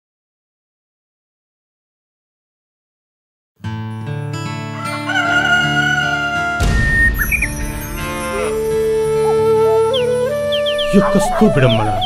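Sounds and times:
background music: 3.6s - 12.0s
held melodic note: 6.1s - 12.0s
cow mooing: 8.2s - 9.7s.

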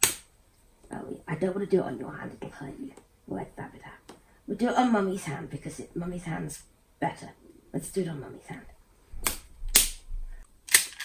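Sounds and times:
plastic toy ball cracking: 10.7s - 11.0s.

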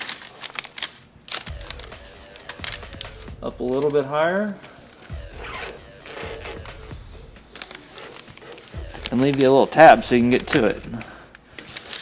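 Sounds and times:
quiet background music: 0.0s - 12.0s
masking tape being pulled off: 5.0s - 9.6s.

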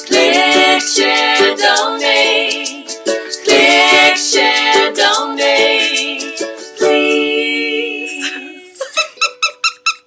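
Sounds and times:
ukulele chord: 0.0s - 8.3s
squeaky toy squeaking: 9.0s - 10.0s.

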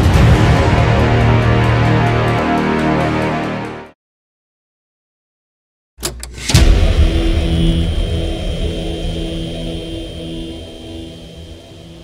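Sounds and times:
low pulsing drone: 6.5s - 12.0s
deep bass hit: 6.6s - 12.0s.

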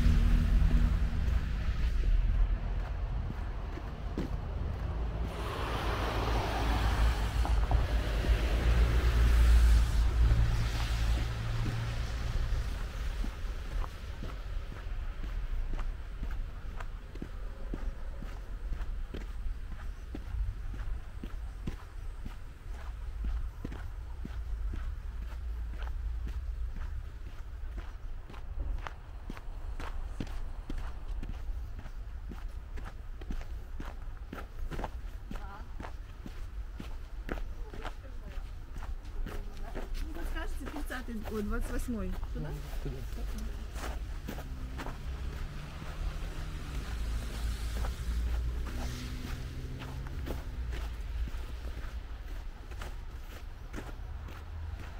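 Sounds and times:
footsteps on snowy sidewalk: 0.0s - 54.9s
street traffic rumble: 0.0s - 54.9s.

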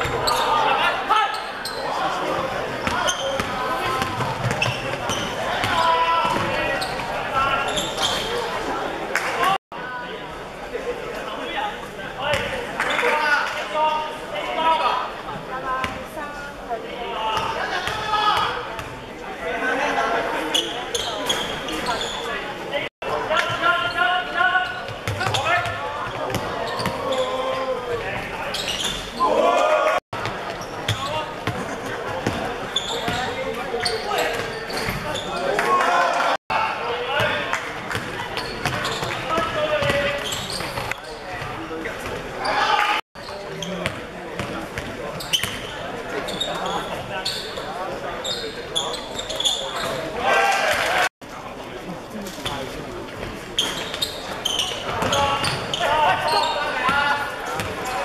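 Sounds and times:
shouts and chatter: 0.0s - 9.6s, 16.8s - 18.7s, 19.4s - 30.0s, 32.7s - 37.6s, 42.3s - 43.0s, 48.3s - 51.1s, 54.5s - 58.0s.

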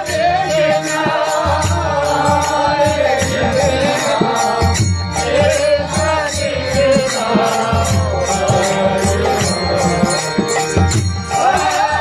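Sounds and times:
chanted singing: 0.0s - 12.0s
harmonium playing held chords: 0.0s - 12.0s
jingling hand cymbals: 0.0s - 12.0s.

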